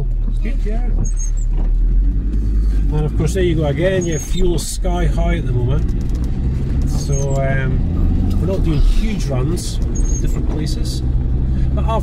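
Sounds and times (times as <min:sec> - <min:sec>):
car engine and road rumble: 0:00.0 - 0:12.0
windscreen wiper squeak: 0:00.2 - 0:02.6, 0:03.7 - 0:04.8, 0:06.8 - 0:10.7.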